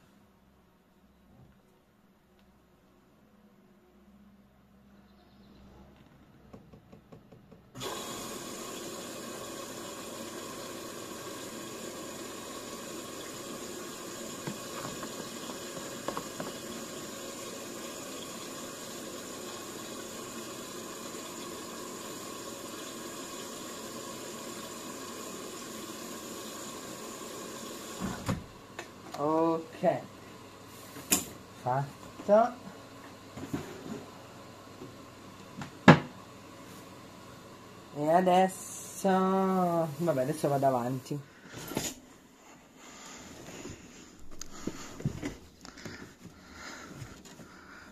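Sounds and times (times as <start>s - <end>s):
washing machine water rushing in: 7.8s - 31.4s, 36.6s - 41.8s.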